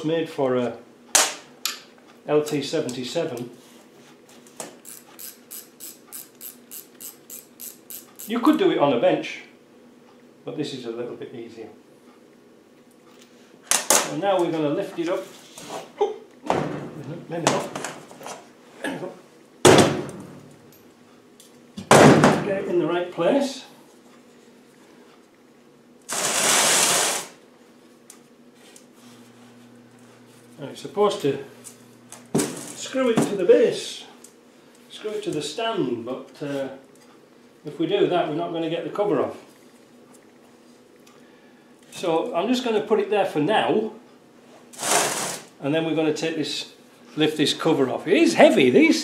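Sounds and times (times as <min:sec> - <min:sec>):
ratchet wrench clicking: 0:04.8 - 0:08.5.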